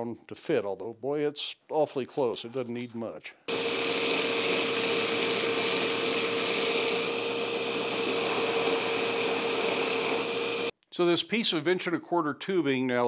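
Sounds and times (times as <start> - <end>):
belt grinder running: 3.5 - 10.7
steel grinding hiss: 3.5 - 10.7.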